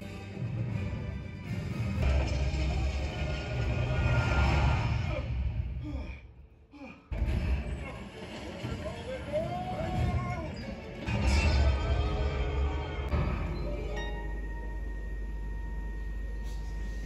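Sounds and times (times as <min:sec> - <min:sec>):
film soundtrack with deep bass: 0:00.0 - 0:17.0.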